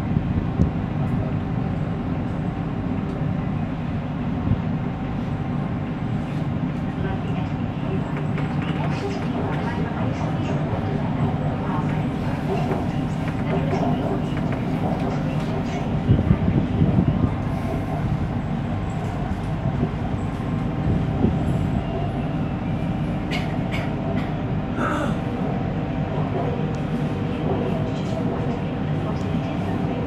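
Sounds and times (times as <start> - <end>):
constant train hum: 0.0 - 30.0
train wheels rumbling on rail: 0.0 - 30.0.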